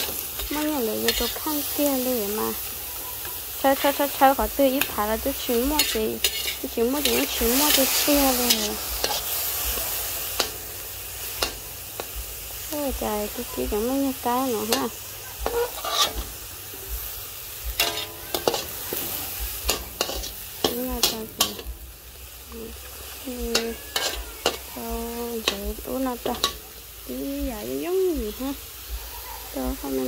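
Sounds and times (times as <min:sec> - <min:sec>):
meat sizzling: 0:00.0 - 0:30.0
metal spatula scraping wok: 0:00.0 - 0:30.0.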